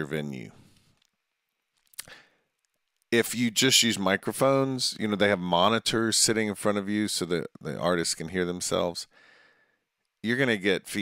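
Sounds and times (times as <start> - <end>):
mouth click: 1.9 - 2.2
soft intake of breath: 9.1 - 9.9.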